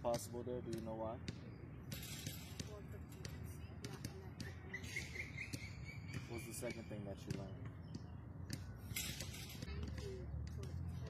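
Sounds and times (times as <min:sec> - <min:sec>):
basketball bouncing on court: 0:00.0 - 0:11.0.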